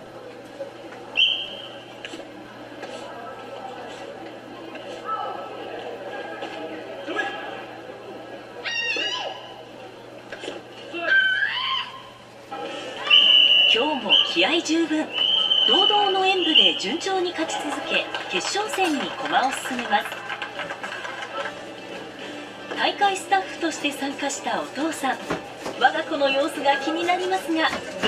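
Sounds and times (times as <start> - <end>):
murmur of voices: 0.0 - 28.0
people clapping: 15.1 - 22.1.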